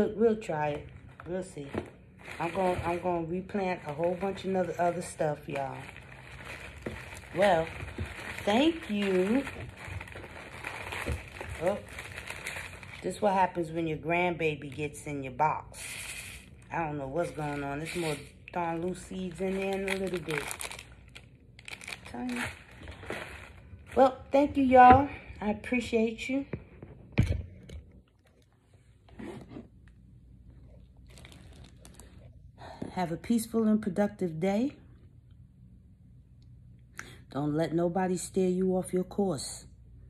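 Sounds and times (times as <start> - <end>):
seed packets rustling: 0.9 - 13.6, 15.8 - 24.2, 31.0 - 32.2.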